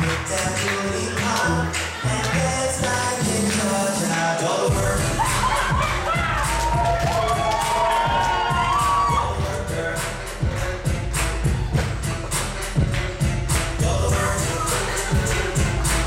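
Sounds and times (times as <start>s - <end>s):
audience clapping: 0.0s - 4.6s, 5.2s - 16.0s
upbeat dance music: 0.0s - 16.0s
cheers and whoops: 5.0s - 9.5s.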